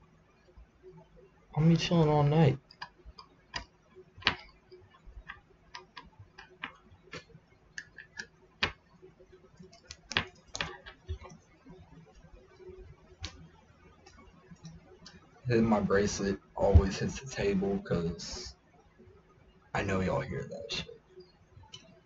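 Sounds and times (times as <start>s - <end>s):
small objects clicking on a table: 2.6s - 8.9s, 9.6s - 11.4s.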